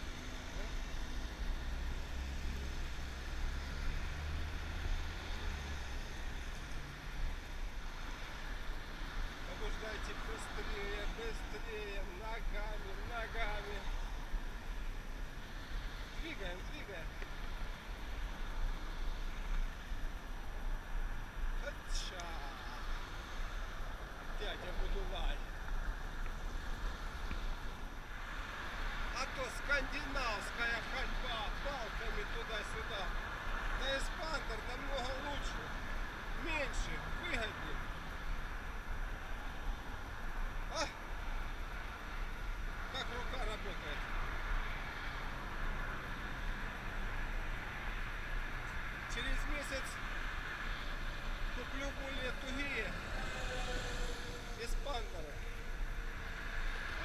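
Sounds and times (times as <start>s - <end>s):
man speaking: 29.2s - 33.1s, 33.8s - 35.7s, 40.7s - 41.0s, 49.1s - 50.0s, 51.6s - 55.7s.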